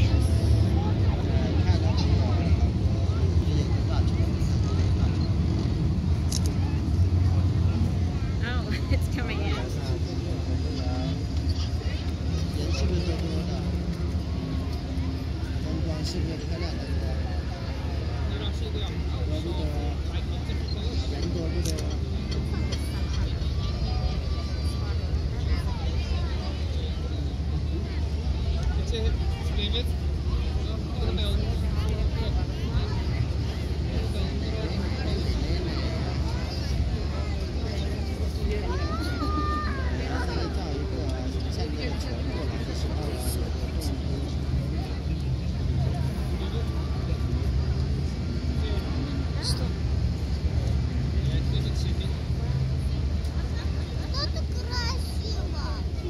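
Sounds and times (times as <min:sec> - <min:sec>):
boat engine drone: 0:00.0 - 0:56.0
people chattering: 0:00.0 - 0:56.0
steady low rumble: 0:00.0 - 0:56.0.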